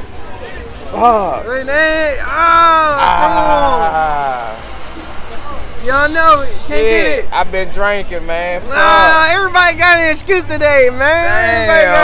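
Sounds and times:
city street traffic rumble: 0.0s - 12.0s
man speaking: 5.4s - 12.0s.

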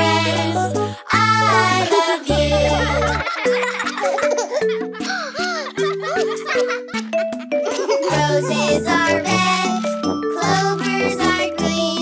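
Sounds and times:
instrumental children's song: 0.0s - 12.0s
cartoon children giggling: 1.3s - 9.7s.

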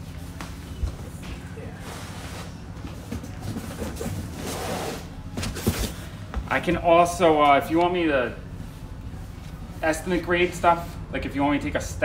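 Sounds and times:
low steady hum: 0.0s - 12.0s
cardboard boxes rustling: 0.6s - 6.4s.

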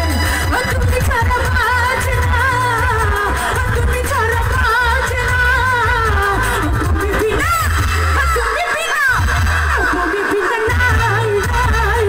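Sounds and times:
amplified band with heavy bass: 0.0s - 12.0s
woman singing into a microphone: 0.0s - 12.0s.

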